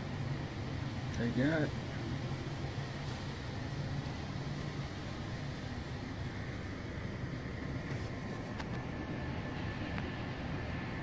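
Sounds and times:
indoor hum and hiss: 0.0 - 11.0.

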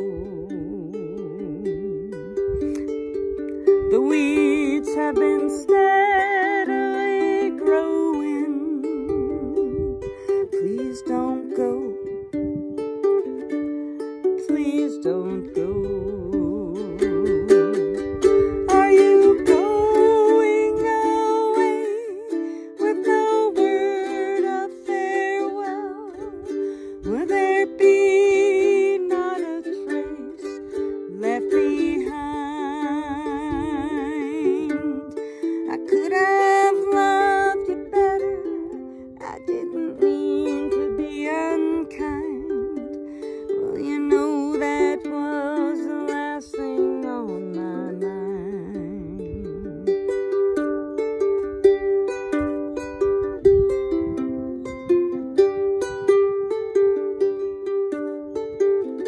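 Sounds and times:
person humming a wordless melody: 0.0 - 51.0
ukulele strumming chords: 0.0 - 59.0.

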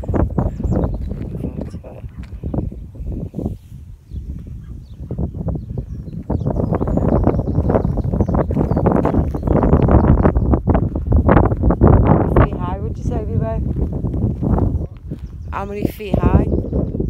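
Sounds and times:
footsteps on stony dirt: 0.6 - 2.7, 6.1 - 12.2, 13.1 - 15.8.

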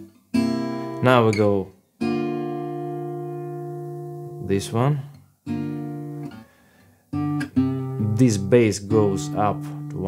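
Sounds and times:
acoustic guitar chord: 2.0 - 10.0.

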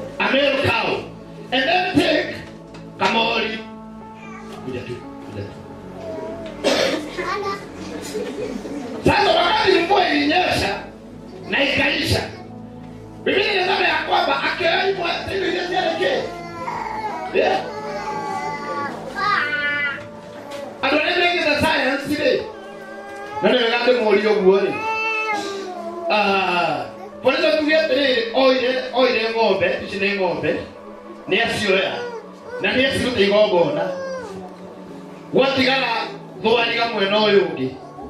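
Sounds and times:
young child crying: 4.2 - 5.2, 5.9 - 8.1, 15.4 - 20.8, 22.4 - 27.3, 31.8 - 34.9
young child's voice: 7.1 - 7.7, 18.7 - 20.0.

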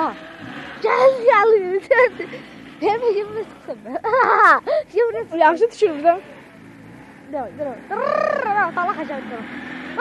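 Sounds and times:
car engine running at low revs: 0.0 - 10.0
nearby voices: 7.2 - 10.0.

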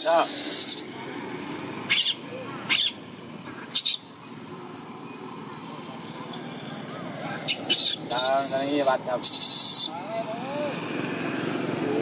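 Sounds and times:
baby monkey screaming: 0.1 - 0.9, 1.9 - 3.0, 3.7 - 4.1, 7.4 - 10.8.

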